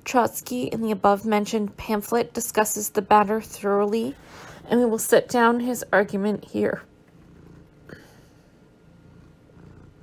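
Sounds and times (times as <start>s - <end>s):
faint low rumble: 0.0s - 10.0s.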